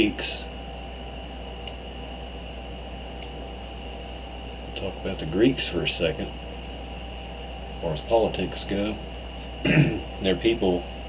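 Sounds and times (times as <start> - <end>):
low electrical hum: 0.0 - 11.0
thin high whine: 0.0 - 11.0.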